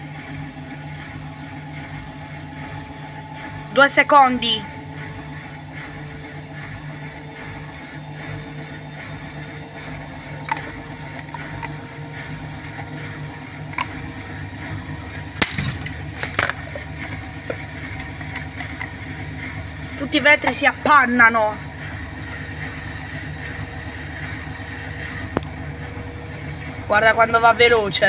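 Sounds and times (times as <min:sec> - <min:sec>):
washing machine spinning: 0:00.0 - 0:28.0.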